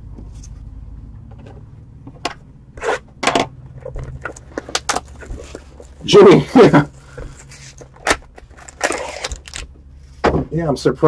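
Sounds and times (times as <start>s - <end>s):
steady low hum: 0.0s - 11.0s
plastic shrink wrap crinkling: 3.8s - 9.7s.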